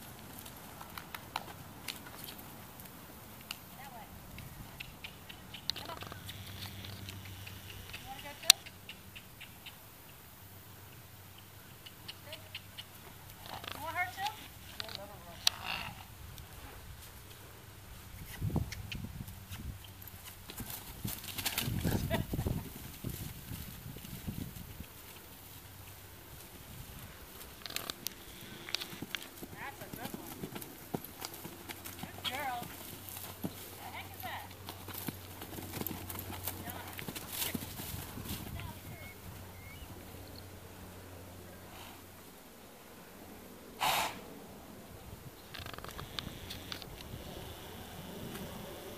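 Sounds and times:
horse hooves cantering on grass: 0.0 - 42.4, 45.4 - 48.9.

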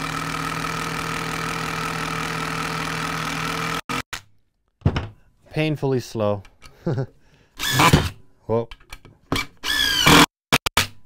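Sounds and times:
impact driver bursts: 7.6 - 8.2, 9.6 - 10.6.

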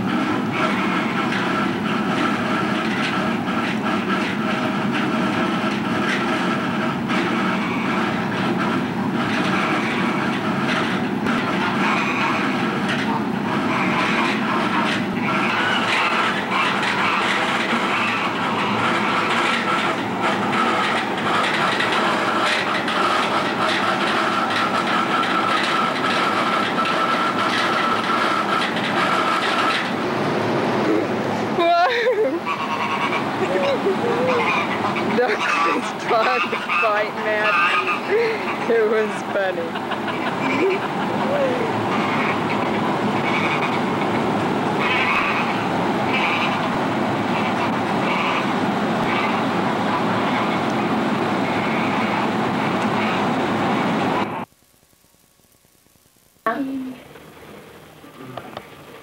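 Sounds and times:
mechanical drone with faint whine: 0.0 - 59.0.

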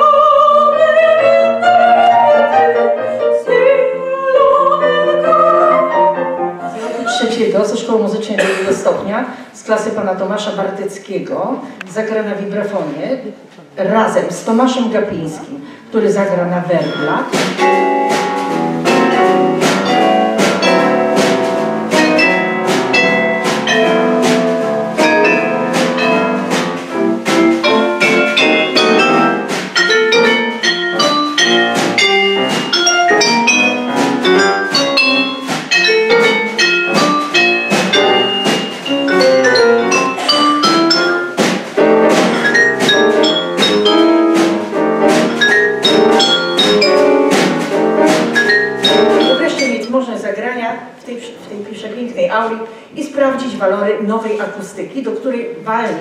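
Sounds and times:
grand piano: 0.0 - 8.8, 16.8 - 50.0
vibraphone runs: 16.8 - 21.4, 22.0 - 26.5, 27.4 - 50.0
snare drum: 17.4 - 49.9.

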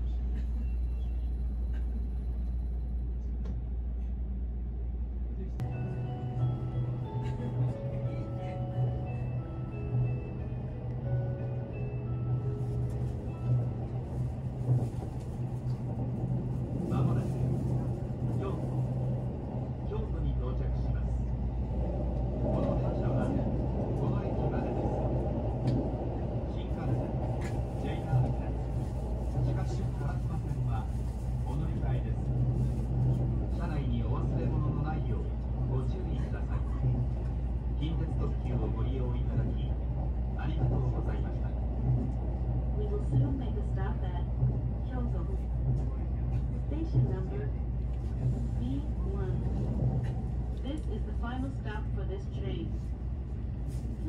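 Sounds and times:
train cabin hum: 0.0 - 54.0
wheels rumbling on rail: 0.0 - 54.0.

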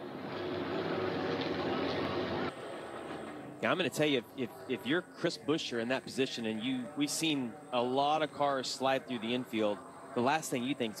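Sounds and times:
race car engines running: 0.0 - 7.5.

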